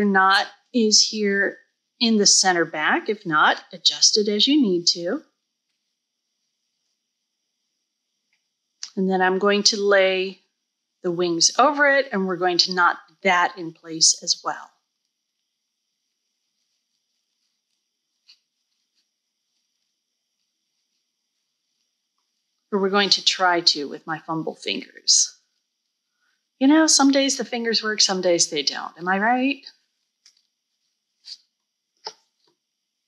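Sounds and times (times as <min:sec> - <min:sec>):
soft fabric rustles: 0:05.4 - 0:07.2, 0:14.8 - 0:22.5, 0:29.6 - 0:32.6.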